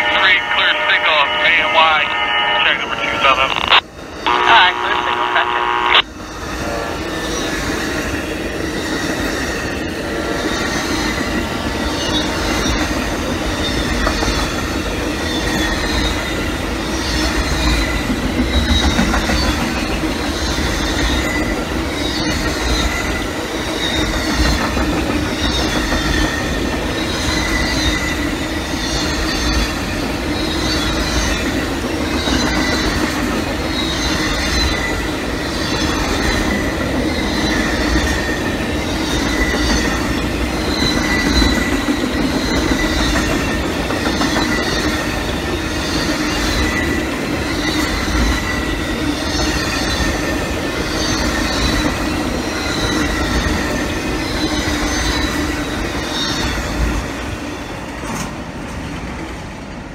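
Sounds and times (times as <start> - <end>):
high whine: 0.0 - 6.1
train wheels rumbling on rail: 6.0 - 59.9.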